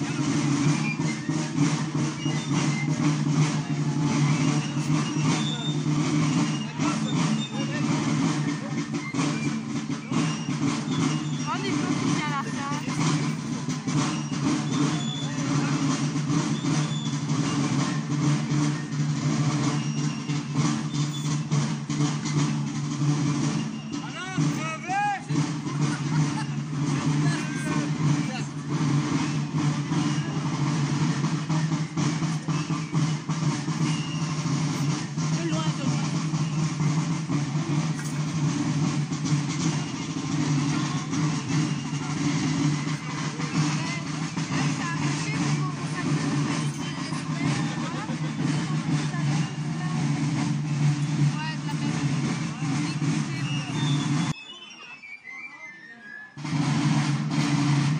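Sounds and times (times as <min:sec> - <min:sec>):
drumming: 0:00.0 - 0:54.4, 0:56.4 - 0:57.9
marching steps: 0:00.0 - 0:54.4, 0:56.4 - 0:57.9
voices: 0:00.0 - 0:57.9.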